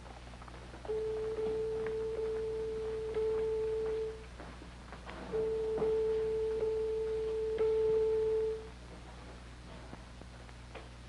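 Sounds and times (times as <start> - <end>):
steady pure tone: 0.8 - 4.5, 5.1 - 8.9
fainter higher tone: 5.3 - 8.7.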